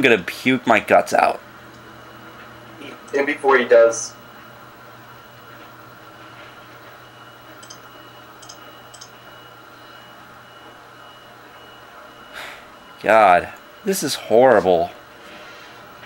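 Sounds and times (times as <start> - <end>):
faint high whine: 0.0 - 16.0.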